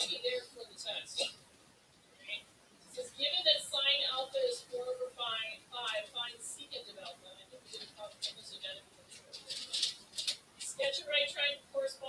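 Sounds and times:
person speaking clearly: 0.0 - 12.0.

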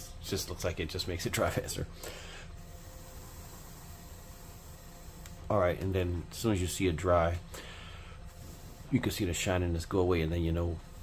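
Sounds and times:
person blowing breath: 2.0 - 3.8, 7.5 - 8.8.

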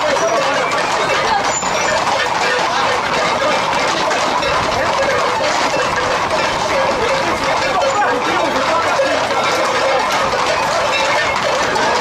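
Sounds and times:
horse hooves on asphalt: 0.0 - 12.0
street crowd voices and shouts: 0.0 - 12.0.

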